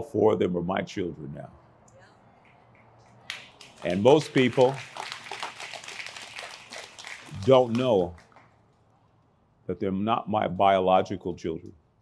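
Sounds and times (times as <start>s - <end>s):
light applause: 2.4s - 8.9s.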